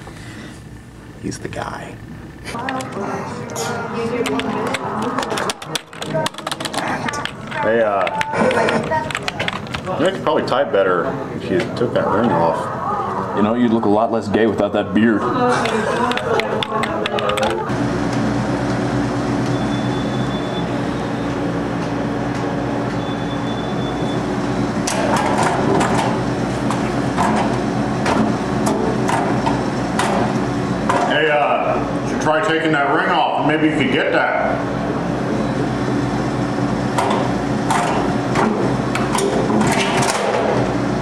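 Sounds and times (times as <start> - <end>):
low machine hum: 0.0 - 41.0.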